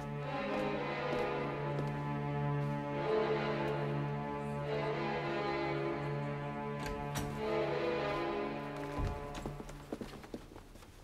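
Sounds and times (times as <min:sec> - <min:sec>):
footsteps on hard floor: 0:00.0 - 0:02.9, 0:08.1 - 0:11.0
sustained orchestral chords: 0:00.0 - 0:09.8.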